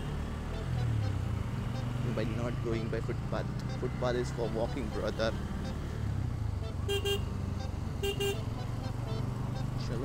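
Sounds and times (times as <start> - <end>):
motorcycle engine rumble: 0.0 - 10.0
vehicle horn toots: 6.6 - 7.3, 8.0 - 8.5.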